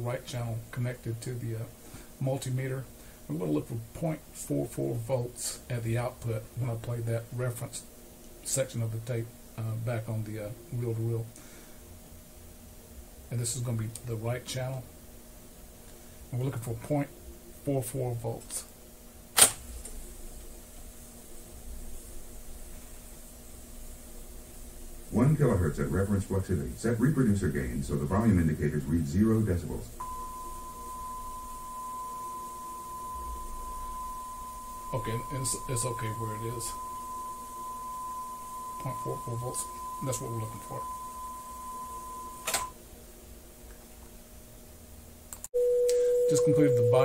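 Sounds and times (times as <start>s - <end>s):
tape machine humming: 26.8s - 42.7s
steady reference tone: 27.8s - 42.7s.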